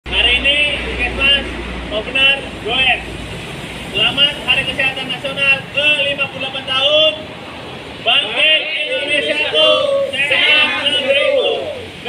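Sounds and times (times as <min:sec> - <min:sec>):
group of people speaking: 0:08.0 - 0:12.0.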